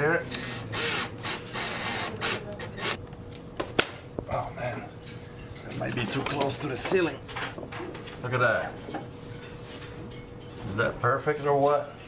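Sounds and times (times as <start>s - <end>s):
cordless drill driving screw: 0.3s - 3.0s.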